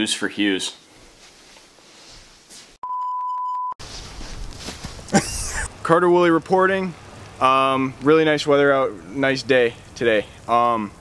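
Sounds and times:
electronic beep: 0:02.8 - 0:03.8.

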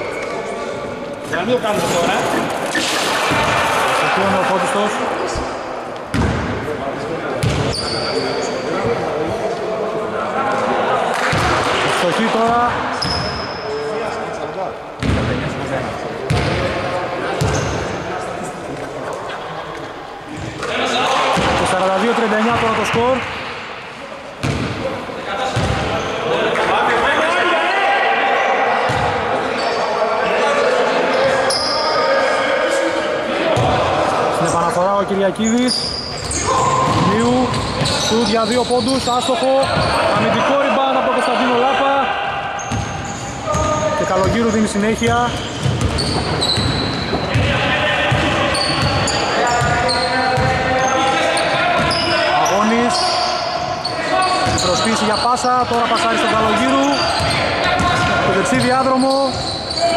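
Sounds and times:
players talking and calling out: 0:00.0 - 0:59.9
basketball bouncing on wooden court: 0:06.1 - 0:06.4, 0:15.0 - 0:15.3, 0:24.4 - 0:24.8, 0:25.6 - 0:25.8, 0:28.9 - 0:29.1, 0:45.1 - 0:47.5, 0:50.4 - 0:50.6.

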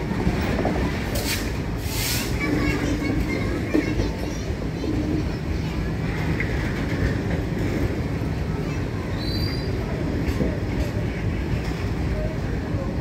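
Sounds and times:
freight wagons rumbling on rails: 0:00.0 - 0:13.0.

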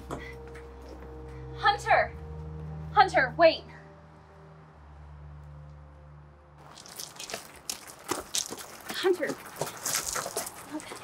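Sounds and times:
crunching clicks: 0:06.6 - 0:10.8.

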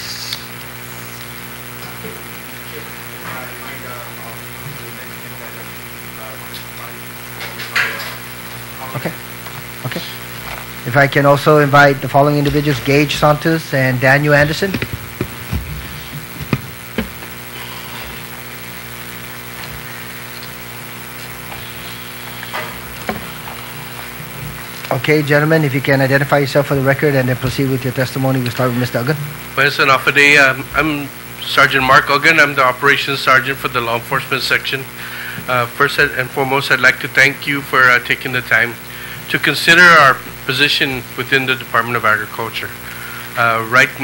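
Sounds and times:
electrical hum: 0:00.0 - 0:44.0
steady hiss: 0:00.0 - 0:44.0
knocks and clicks: 0:14.4 - 0:17.3.

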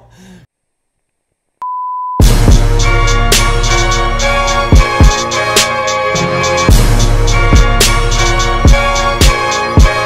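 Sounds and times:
steady test tone beep: 0:01.6 - 0:02.2.

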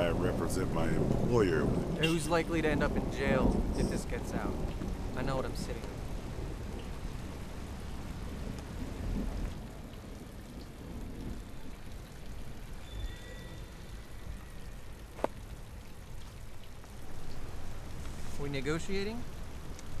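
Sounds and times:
steady rain falling: 0:00.0 - 0:20.0.

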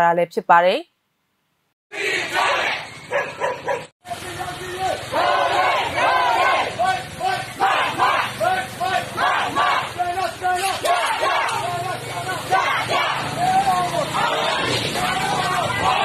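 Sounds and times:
crowd chanting slogans: 0:01.9 - 0:03.0, 0:04.8 - 0:16.0.

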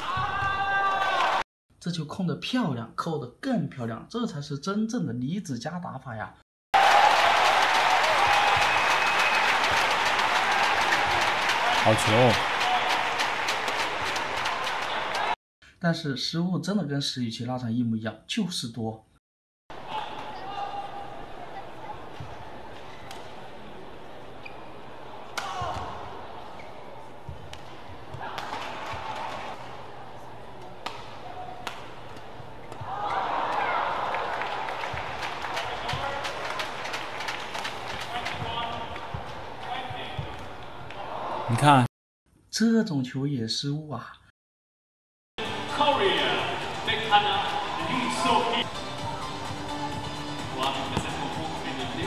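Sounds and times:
crowd cheering: 0:00.0 - 0:01.4, 0:06.8 - 0:15.4, 0:27.8 - 0:29.8, 0:32.7 - 0:41.9, 0:45.4 - 0:48.6
racket hitting shuttlecock: 0:25.3 - 0:25.9, 0:30.6 - 0:33.8.

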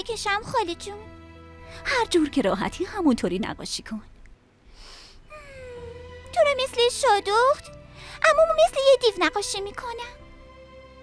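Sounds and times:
short breath: 0:04.7 - 0:05.3
boy humming: 0:05.3 - 0:05.9.

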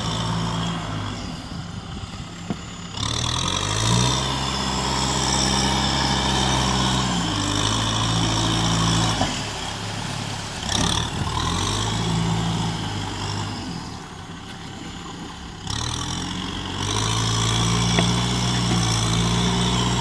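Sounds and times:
tractor diesel engine under load: 0:00.0 - 0:20.0.

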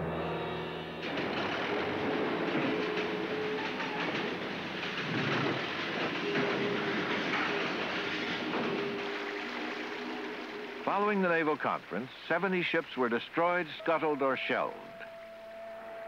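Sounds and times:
industrial machinery clattering: 0:00.7 - 0:12.0.

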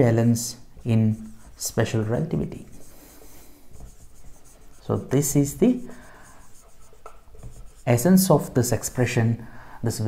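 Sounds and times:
marker writing on whiteboard: 0:00.0 - 0:09.1.

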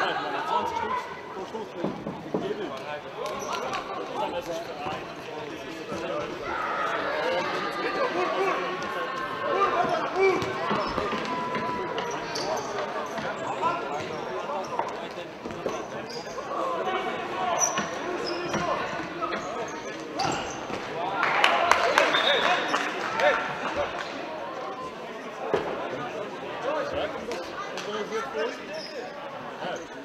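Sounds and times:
crowd shouting and cheering: 0:06.0 - 0:14.2, 0:16.4 - 0:26.4.

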